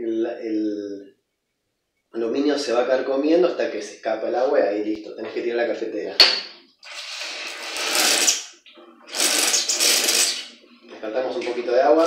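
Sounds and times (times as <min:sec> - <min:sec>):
espresso machine pump buzzing: 0:09.1 - 0:10.5.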